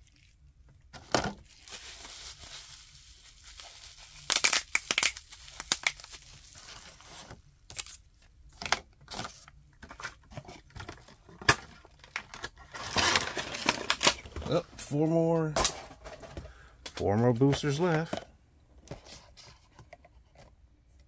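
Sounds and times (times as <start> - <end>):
bubble wrap crinkling and crackling: 0.0 - 8.2.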